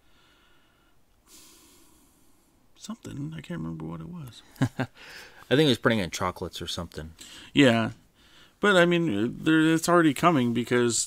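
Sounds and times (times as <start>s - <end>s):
soft breath drawn in: 0.0s - 2.7s, 5.0s - 5.5s, 8.1s - 8.6s.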